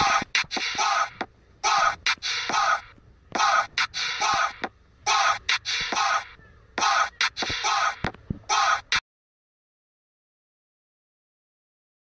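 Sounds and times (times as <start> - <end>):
raspy hoarse vocal rasps: 0.0 - 9.0.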